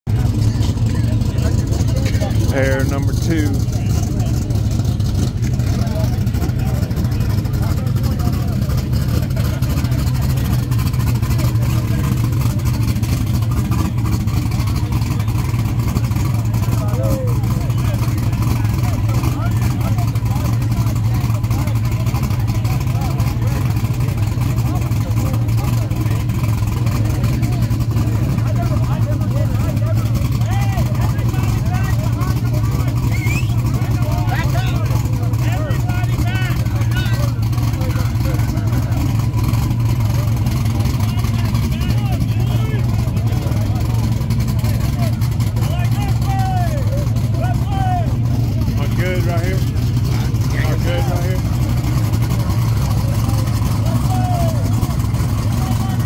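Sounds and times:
car engines rumbling: 0:00.0 - 0:56.0
crowd voices: 0:00.0 - 0:56.0.

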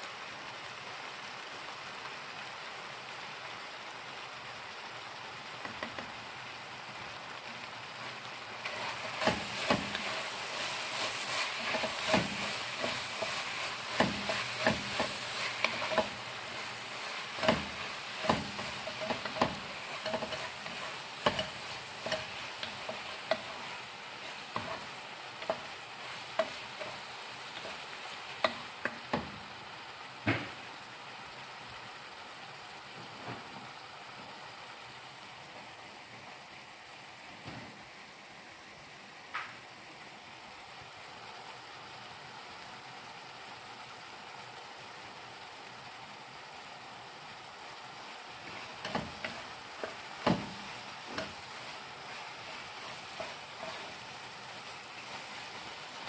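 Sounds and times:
meat and onions sizzling: 0:00.0 - 0:56.0
wooden spatula knocking pot: 0:11.2 - 0:23.7, 0:48.8 - 0:51.4.

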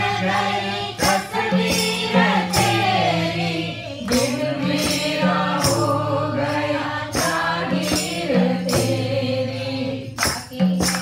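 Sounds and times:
sharp percussive strike: 0:00.0 - 0:11.0
women singing in unison: 0:00.0 - 0:11.0
hand clapping: 0:04.0 - 0:06.0, 0:07.2 - 0:09.2, 0:10.1 - 0:11.0.

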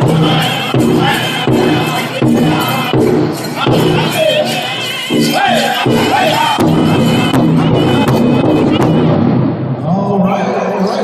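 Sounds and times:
high strained group singing: 0:00.0 - 0:09.0
heavy drum strikes: 0:00.0 - 0:10.0.

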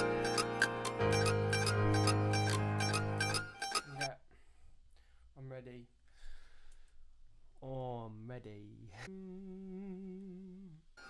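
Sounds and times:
plucked mandolin loop: 0:00.0 - 0:04.1.

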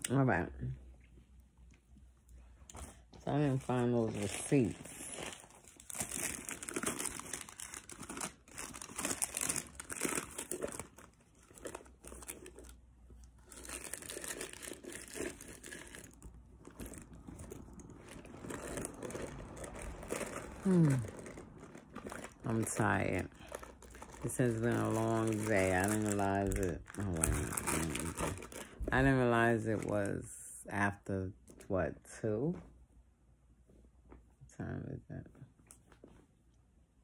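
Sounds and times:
shopping bags crinkling: 0:03.3 - 0:30.0.

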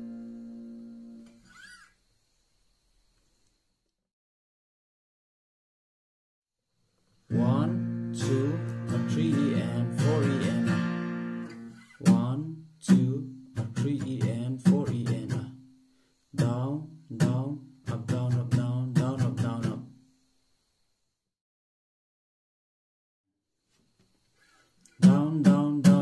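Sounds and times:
acoustic guitar strumming: 0:00.0 - 0:01.8, 0:07.3 - 0:15.8, 0:16.4 - 0:20.0, 0:25.0 - 0:26.0.

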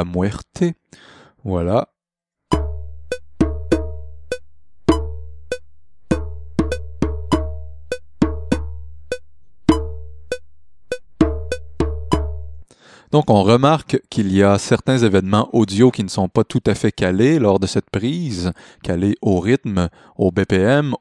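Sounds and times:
deep low drum boom: 0:02.5 - 0:04.3, 0:06.1 - 0:09.0, 0:11.2 - 0:12.6.

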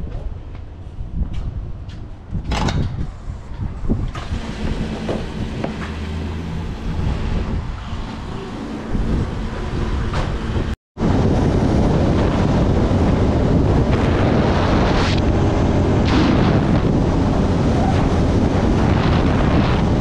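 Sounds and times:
wind noise on microphone: 0:00.0 - 0:20.0.

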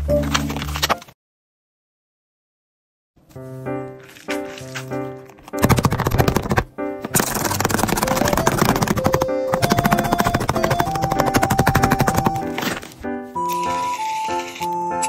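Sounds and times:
light melody: 0:03.2 - 0:05.6, 0:08.0 - 0:15.0
paper crinkling and crackling: 0:04.0 - 0:15.0.

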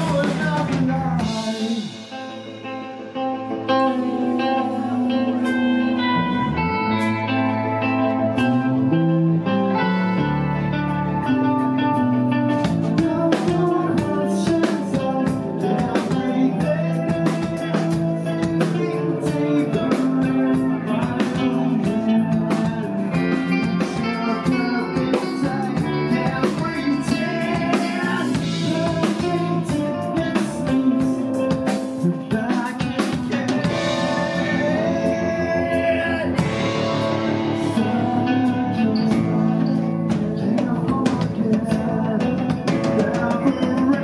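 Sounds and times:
drum kit: 0:00.0 - 0:44.0
electric guitar: 0:00.0 - 0:44.0
man singing: 0:00.0 - 0:44.0.

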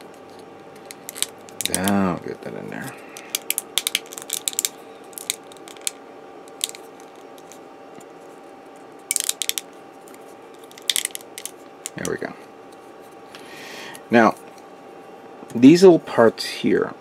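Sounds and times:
faint steady hum: 0:00.0 - 0:17.0
plastic parts clicking together: 0:03.2 - 0:06.8, 0:09.1 - 0:09.6, 0:10.6 - 0:12.2.

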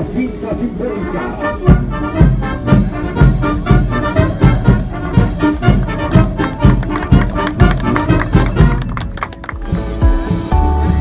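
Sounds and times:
brass band march music: 0:00.0 - 0:10.9.

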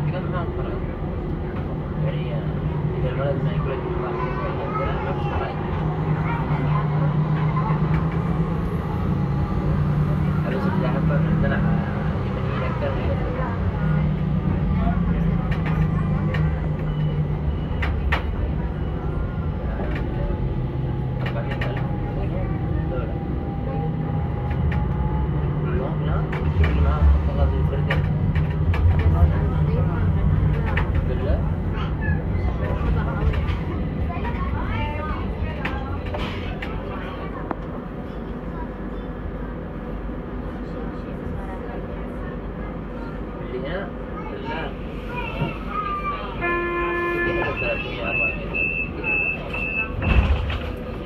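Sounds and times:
passengers talking: 0:00.0 - 0:51.0
tram rumbling: 0:00.0 - 0:51.0.

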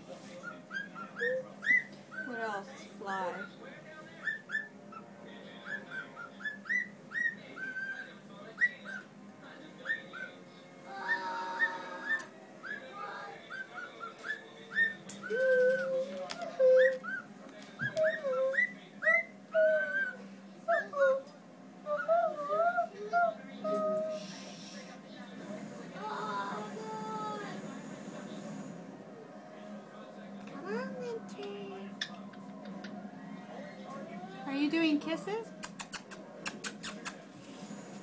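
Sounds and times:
cockatiel whistling: 0:00.4 - 0:02.4, 0:04.2 - 0:05.0, 0:05.6 - 0:09.1, 0:11.0 - 0:12.9, 0:13.5 - 0:15.9.

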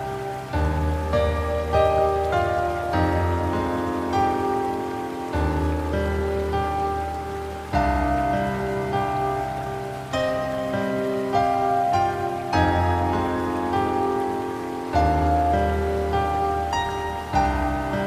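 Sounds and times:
calm instrumental music: 0:00.0 - 0:18.0
rain: 0:00.0 - 0:18.0.

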